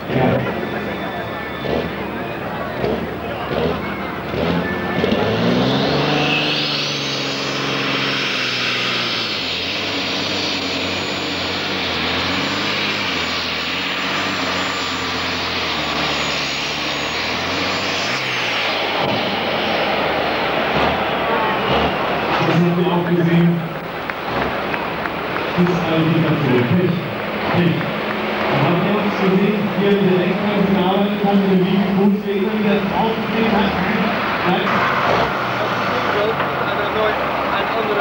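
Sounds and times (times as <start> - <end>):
diesel engine revving: 0.0 - 38.0
turbo whine: 0.0 - 38.0.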